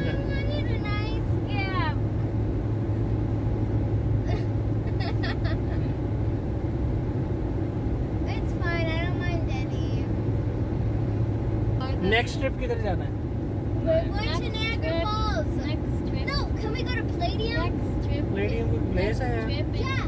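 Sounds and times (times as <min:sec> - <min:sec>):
car cabin road and engine noise: 0:00.0 - 0:20.0.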